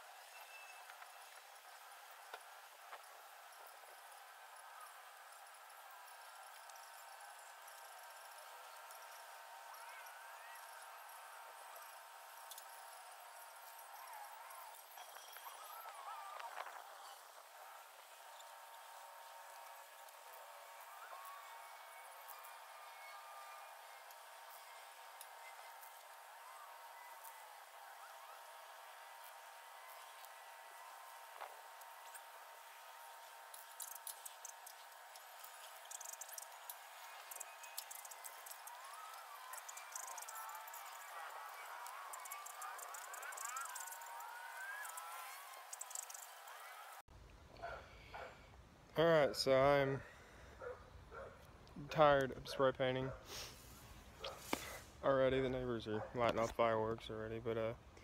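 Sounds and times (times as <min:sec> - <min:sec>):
chirping glides: 0:31.9 - 0:47.0.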